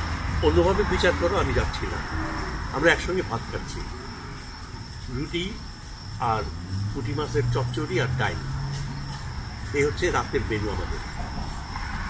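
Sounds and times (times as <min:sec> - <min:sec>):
crickets chirping: 0:00.0 - 0:12.0
person talking: 0:09.8 - 0:11.1.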